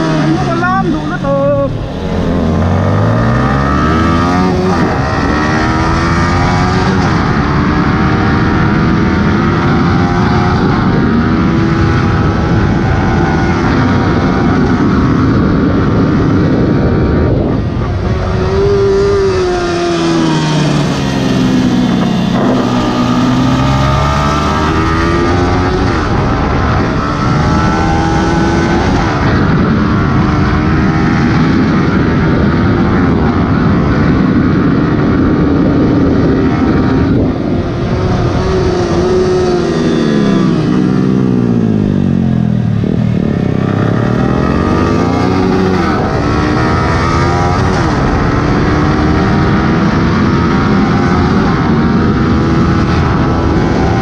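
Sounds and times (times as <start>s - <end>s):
motorcycle engine at high revs: 0.0s - 54.0s
wind rush: 0.0s - 54.0s.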